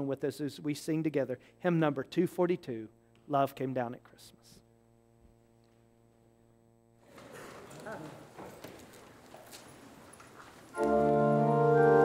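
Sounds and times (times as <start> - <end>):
quiet shuffling and rustling: 7.0 - 11.4
knocks of feet and pews: 7.1 - 11.0.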